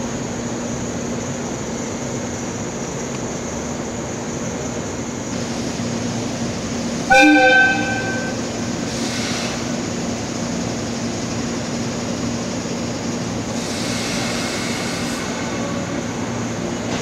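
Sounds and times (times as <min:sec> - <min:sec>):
electric train equipment humming: 0:00.0 - 0:17.0
hiss: 0:04.2 - 0:07.1, 0:07.8 - 0:17.0.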